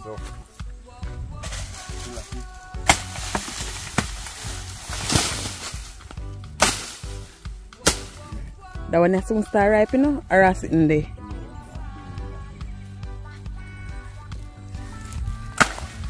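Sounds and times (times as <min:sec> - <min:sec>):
background music: 0:00.0 - 0:16.0
dry leaves rustling and crackling: 0:01.4 - 0:08.4
sharp snaps of leaves: 0:01.5 - 0:08.3, 0:15.1 - 0:16.0.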